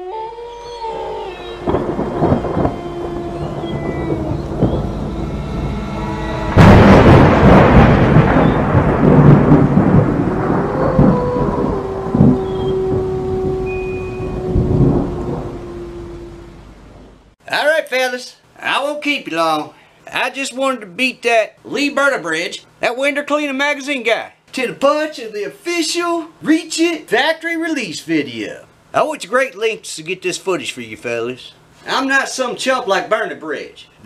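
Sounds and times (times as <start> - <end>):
long held tones: 0.0 - 8.7, 10.5 - 17.3
thunder rumbling: 1.4 - 17.4
loud thunderclap: 1.6 - 17.2
rain: 1.6 - 17.4.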